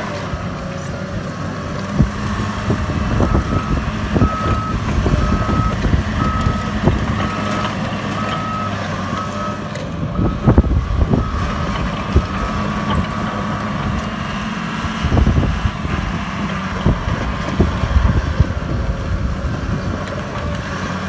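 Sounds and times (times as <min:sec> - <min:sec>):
crawler dozer running: 0:00.0 - 0:21.0.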